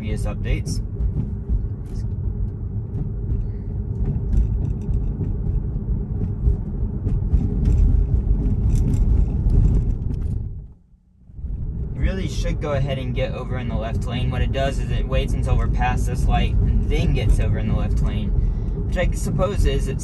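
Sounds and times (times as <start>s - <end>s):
road and tyre rumble in car: 0.0s - 20.0s.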